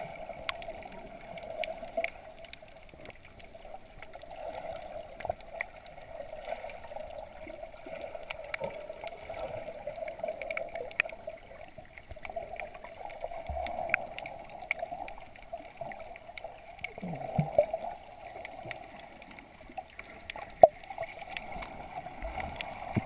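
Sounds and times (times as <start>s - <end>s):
sharp clicks and crackles: 0.0s - 23.0s.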